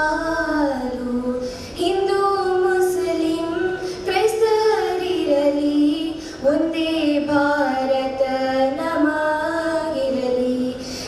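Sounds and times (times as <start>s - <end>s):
girls singing together: 0.0s - 11.0s.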